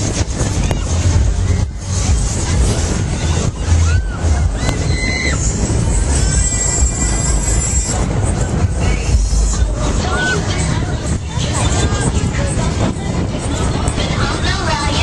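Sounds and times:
crowd babble: 0.0s - 15.0s
fairground ride music and voices: 0.0s - 15.0s
heavy low rumble of ride: 0.0s - 15.0s.

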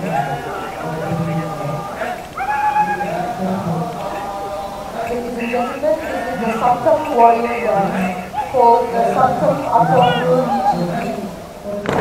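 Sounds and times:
high held call: 0.0s - 12.0s
male chorus singing: 0.0s - 12.0s.

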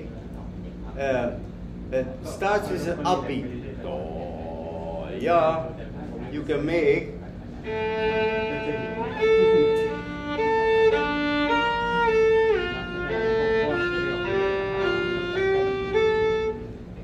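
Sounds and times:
solo violin melody: 7.6s - 16.7s.

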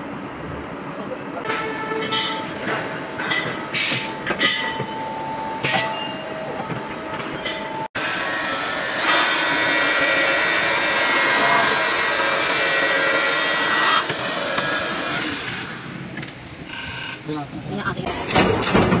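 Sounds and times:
grinding machine grinding steel seam: 8.0s - 16.0s.

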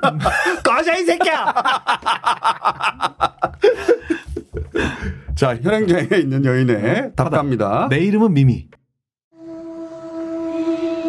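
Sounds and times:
men laughing hard: 0.0s - 5.4s.

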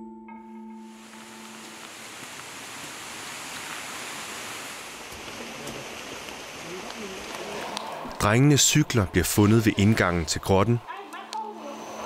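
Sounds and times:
mallet percussion chord: 0.0s - 0.9s
heavy rain: 0.8s - 9.4s.

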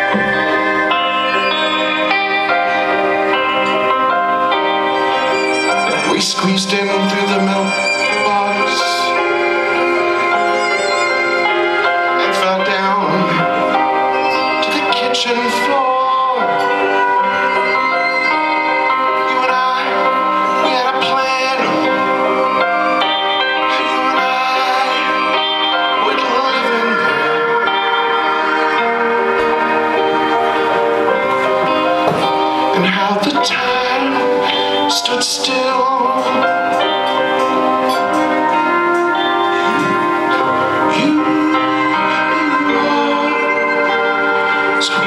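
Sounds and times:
guitar: 0.0s - 45.0s
keyboard chords: 0.0s - 45.0s
live band playing sustained notes: 0.0s - 45.0s
person singing: 0.0s - 45.0s
violin: 0.0s - 45.0s.

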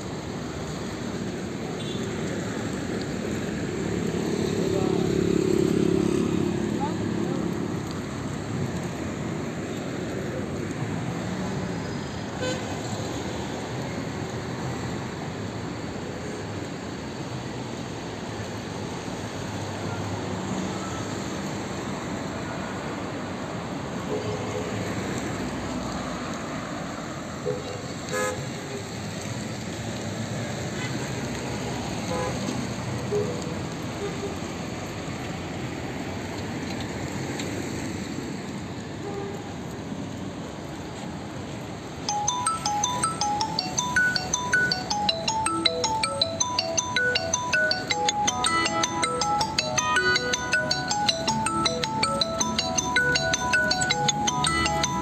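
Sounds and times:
traffic noise: 0.0s - 55.0s
tinkling electronic melody: 42.1s - 55.0s.

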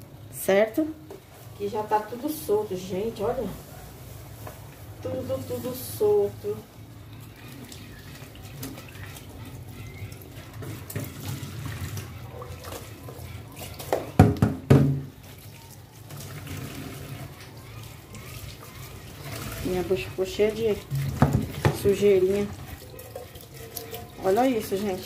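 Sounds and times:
pan being scrubbed: 5.0s - 14.2s, 15.1s - 25.0s
tap running into metal pan: 13.8s - 15.1s, 20.9s - 22.0s.

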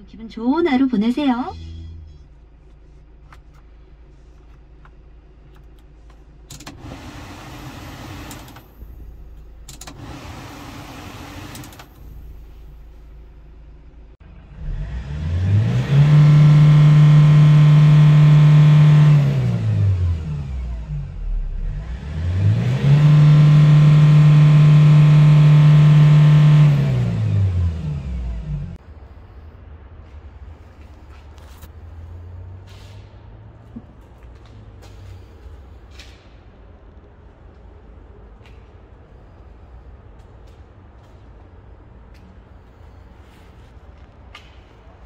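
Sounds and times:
truck engine idling and revving: 0.0s - 45.0s.

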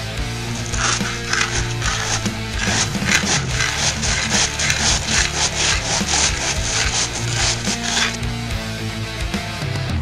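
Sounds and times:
music: 0.0s - 10.0s
rasping scrapes on asphalt: 0.3s - 8.4s.

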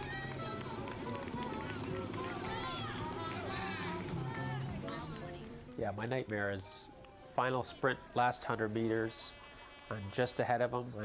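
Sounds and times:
people calling out: 0.0s - 5.6s.

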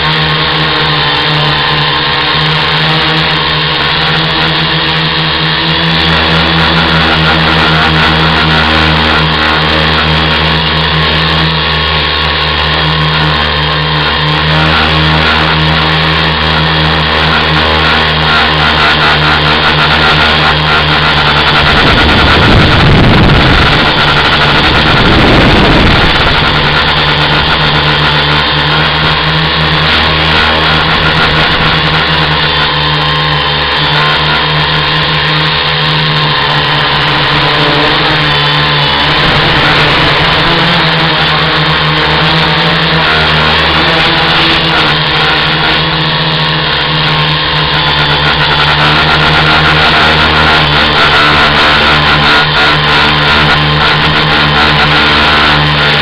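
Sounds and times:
electric motors and propellers: 0.0s - 56.0s
rushing wind noise: 3.3s - 56.0s.

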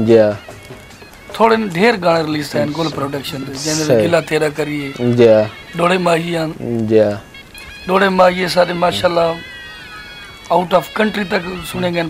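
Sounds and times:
man speaking: 1.4s - 7.2s, 7.9s - 9.4s, 10.5s - 12.0s.

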